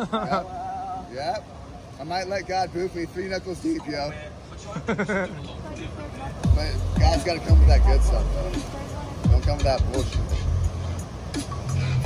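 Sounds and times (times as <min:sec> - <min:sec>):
faint music: 0:00.0 - 0:12.0
ocean surf breaking on rocks: 0:00.0 - 0:12.0.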